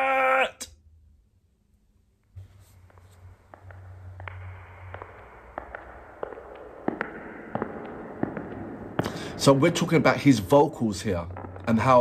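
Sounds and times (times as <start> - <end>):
soft hiss: 1.7 - 7.0.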